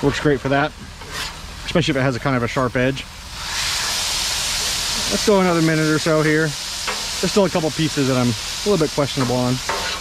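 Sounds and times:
chicken sizzling on griddle: 0.0s - 10.0s
spatula on griddle: 0.4s - 10.0s.

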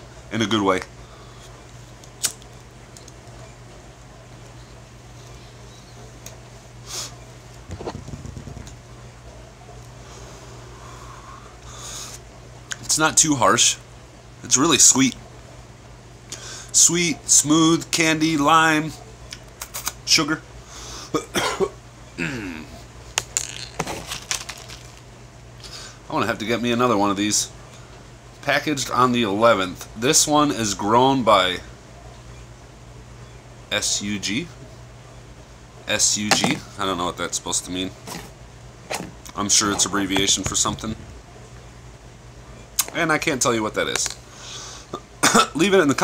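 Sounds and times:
steady low hum: 0.0s - 46.0s
person breathing: 10.0s - 12.2s, 16.3s - 16.7s, 44.3s - 44.9s.

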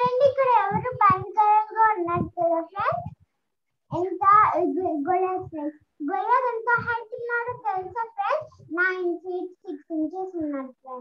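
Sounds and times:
girl reciting over video call: 0.0s - 11.0s.

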